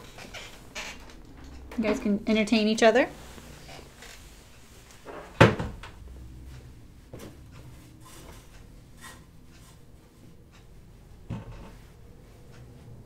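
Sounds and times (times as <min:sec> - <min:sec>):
faint clicks and rustles: 0:00.0 - 0:13.0.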